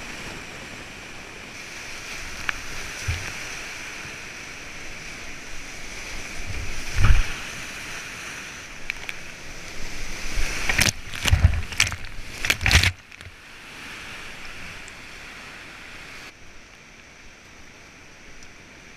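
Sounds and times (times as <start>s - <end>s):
waves thudding and splashing: 0.0s - 16.4s.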